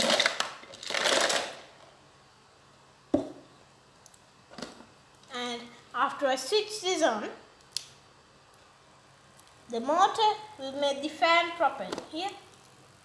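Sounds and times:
ice cubes rattling from a jar: 0.0s - 1.6s.

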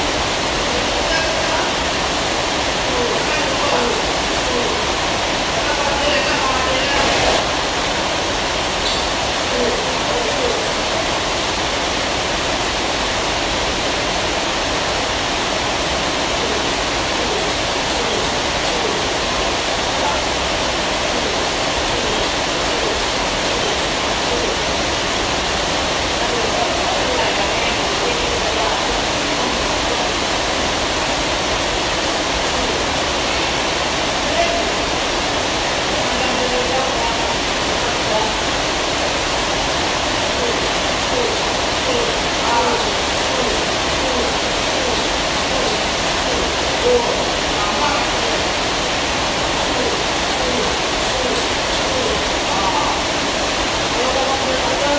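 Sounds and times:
faint voices: 2.8s - 7.5s, 16.2s - 25.2s, 40.0s - 53.3s
loud rushing noise: 6.6s - 8.1s.

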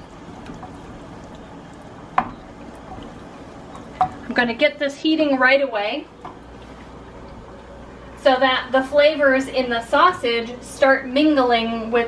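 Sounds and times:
spoon stirring sauce in pot: 0.0s - 4.4s.

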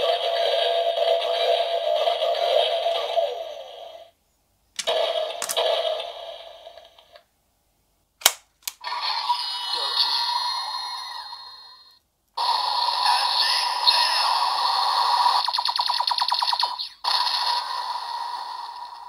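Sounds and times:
toy gun clicks: 4.8s - 5.6s, 8.2s - 8.8s.

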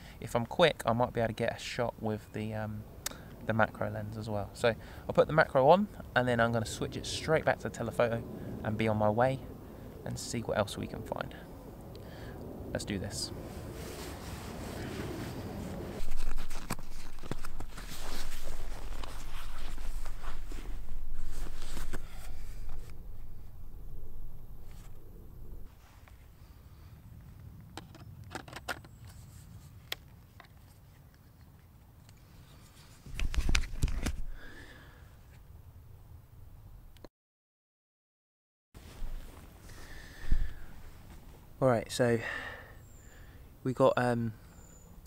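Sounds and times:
rummaging in a camera bag: 13.8s - 23.3s, 32.4s - 34.3s.

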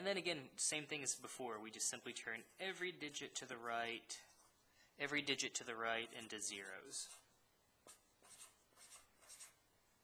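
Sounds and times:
marker writing on paper: 6.0s - 9.6s.

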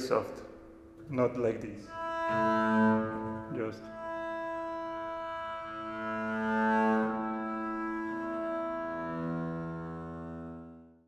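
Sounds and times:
double bass sustained notes: 0.0s - 11.0s.

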